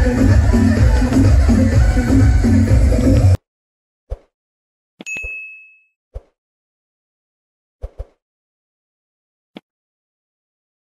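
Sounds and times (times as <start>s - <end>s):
notification bell ding: 5.0s - 6.0s.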